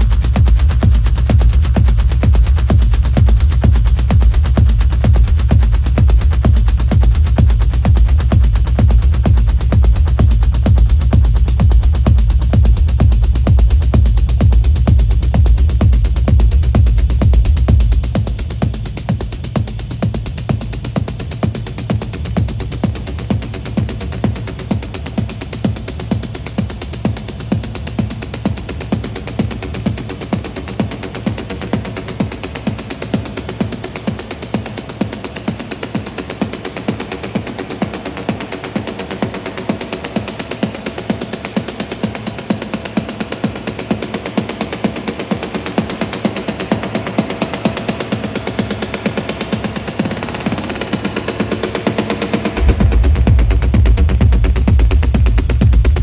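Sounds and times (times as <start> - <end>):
deep techno kick drum: 0.0 - 56.0
fast rattling percussion loop: 0.0 - 56.0
heavy bass: 0.0 - 56.0.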